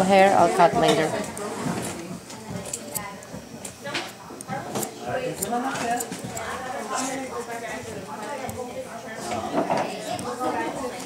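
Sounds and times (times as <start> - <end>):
faint speech: 0.6 - 11.0
scissors snipping hair: 2.6 - 3.8, 4.7 - 6.5.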